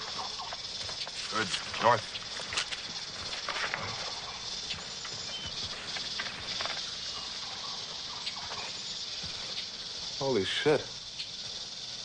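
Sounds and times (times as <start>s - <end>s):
small rustles: 0.0s - 10.2s
high insect drone: 0.0s - 12.0s.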